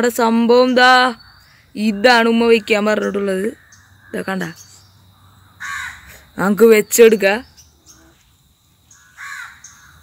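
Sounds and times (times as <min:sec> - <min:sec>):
crow cawing: 0:03.6 - 0:04.2, 0:05.2 - 0:06.2, 0:08.9 - 0:10.0.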